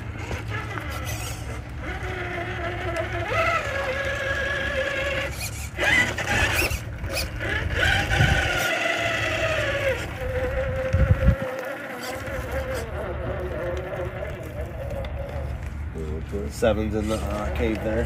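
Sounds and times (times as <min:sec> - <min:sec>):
electric motor and gears whining: 0:00.0 - 0:18.0.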